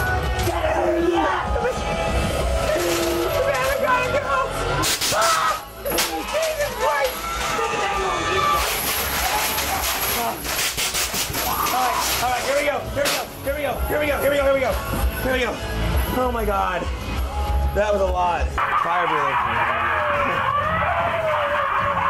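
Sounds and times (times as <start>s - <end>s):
background music: 0.0s - 22.0s
people yelling and laughing: 0.3s - 10.6s, 18.6s - 22.0s.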